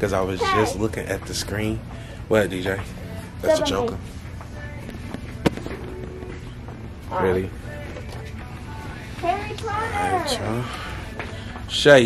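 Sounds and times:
low hum: 0.8 - 9.8.

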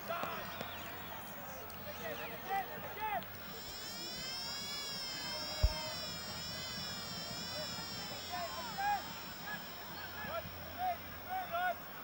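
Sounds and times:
high buzzing tone: 3.5 - 11.2.

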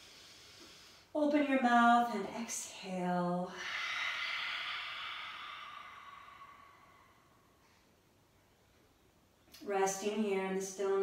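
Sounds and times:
woman exhaling a breathy sigh: 3.5 - 7.8.

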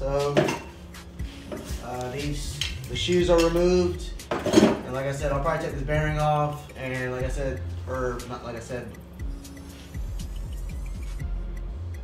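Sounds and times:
background music with singing: 0.0 - 12.0.

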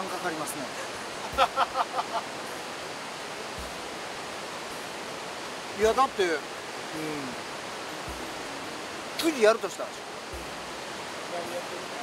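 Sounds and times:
rushing water hiss: 0.0 - 12.0.

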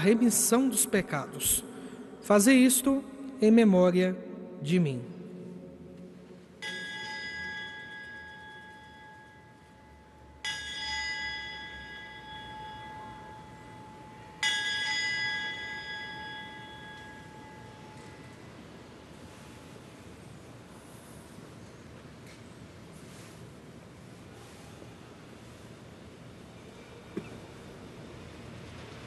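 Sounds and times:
altar bell ringing: 6.3 - 18.4.

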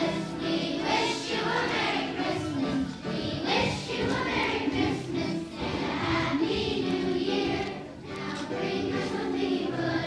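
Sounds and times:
children's choir singing: 0.0 - 10.0.

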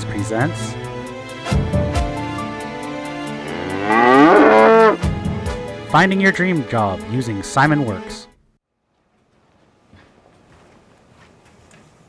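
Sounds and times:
background music: 0.0 - 8.4.

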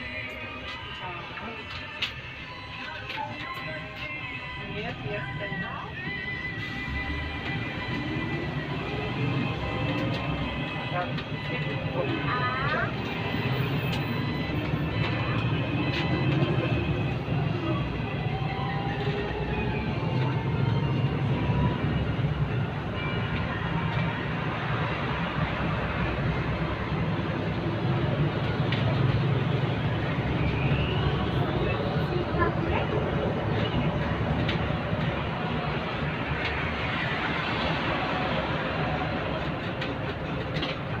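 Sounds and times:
bus engine and road rumble: 0.0 - 41.0.

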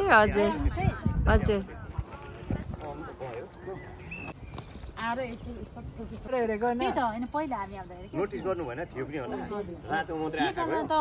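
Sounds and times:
light footsteps on a path: 0.0 - 11.0.

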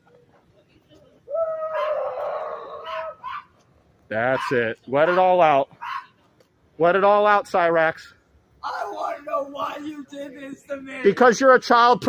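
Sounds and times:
dog howling: 1.3 - 3.4.

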